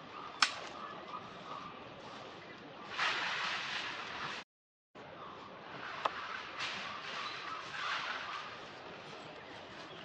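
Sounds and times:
sharp crack: 0.4 - 0.7.

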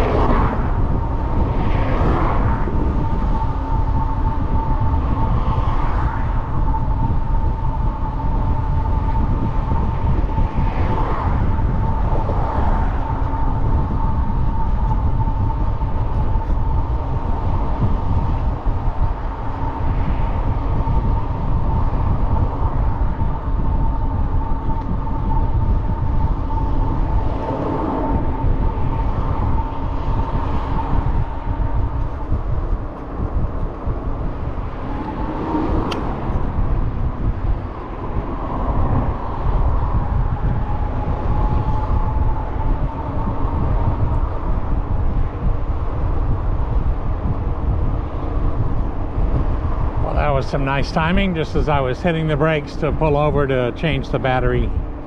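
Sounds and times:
faint steady whine: 0.0 - 55.0
wind buffeting microphone: 0.0 - 55.0.

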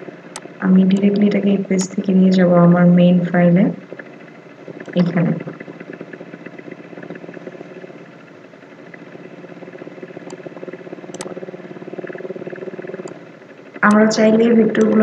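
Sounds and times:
motor humming: 0.0 - 15.0
faint clicks: 10.1 - 11.4.

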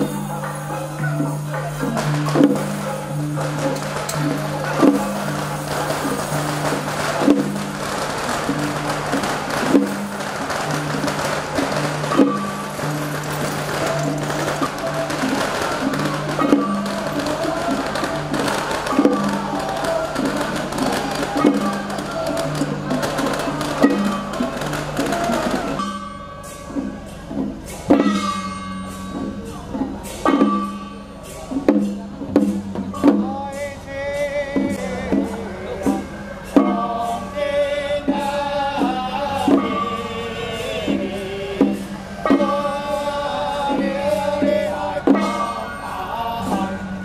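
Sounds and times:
procession band drums: 0.0 - 47.0.

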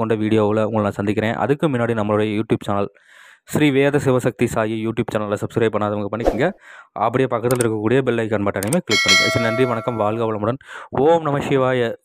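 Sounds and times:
man speaking: 8.6 - 10.4
bell-like chime: 8.9 - 10.2.

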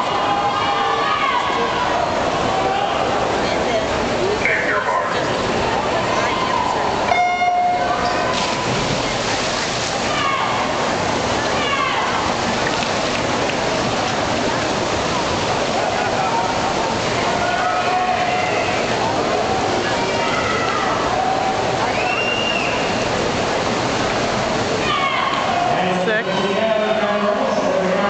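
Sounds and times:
crowd chatter: 0.0 - 28.0
water splashing: 0.0 - 28.0.

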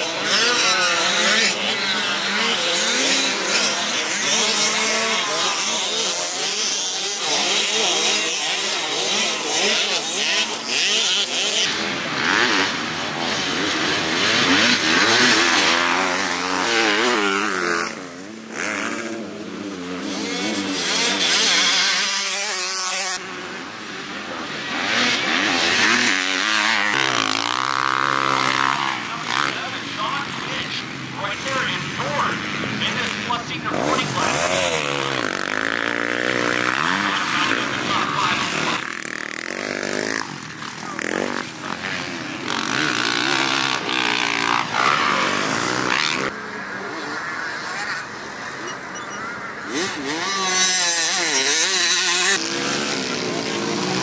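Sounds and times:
dirt bike engines revving: 0.0 - 54.0.

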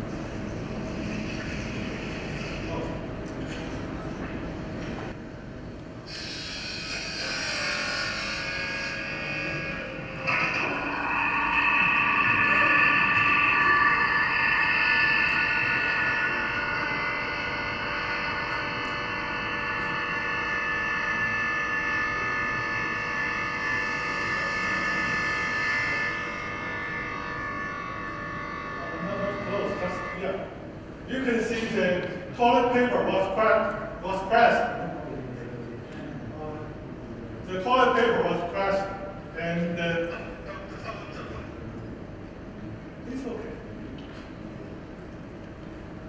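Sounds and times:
electric pumps whining: 0.0 - 35.0.

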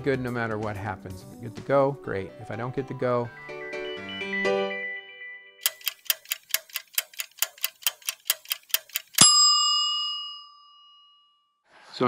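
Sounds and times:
clock ticking: 5.6 - 9.6
bell-like ding: 9.2 - 11.6.

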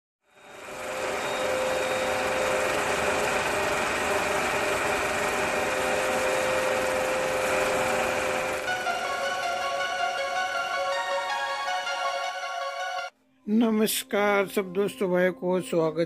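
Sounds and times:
film projector whirring: 0.3 - 11.4.

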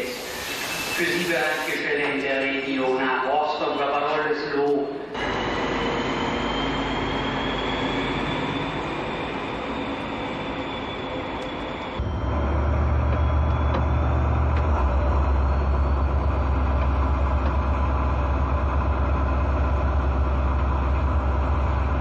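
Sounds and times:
faint high whining tones: 5.0 - 18.1
locomotive low drone: 5.0 - 22.0
train running: 5.0 - 22.0.

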